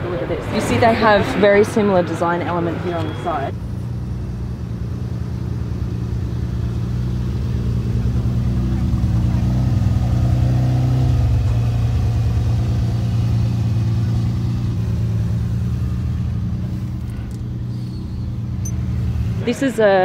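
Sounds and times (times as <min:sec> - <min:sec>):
car engine running at low revs: 0:00.1 - 0:20.0.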